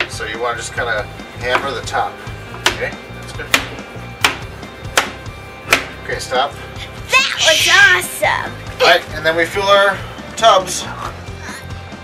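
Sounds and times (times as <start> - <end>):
background music: 0.0 - 12.0
hammer striking frozen block: 3.5 - 6.0.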